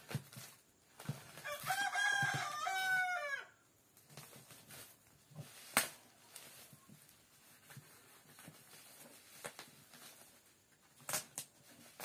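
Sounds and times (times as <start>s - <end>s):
knife cutting bubble wrap: 0.0s - 3.2s, 4.0s - 12.0s
rooster crowing: 1.4s - 3.6s.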